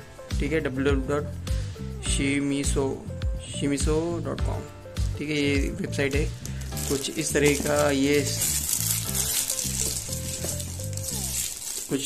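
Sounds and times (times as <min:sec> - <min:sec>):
background music with bass line: 0:00.0 - 0:11.5
plastic wrapping crinkling: 0:05.0 - 0:12.0.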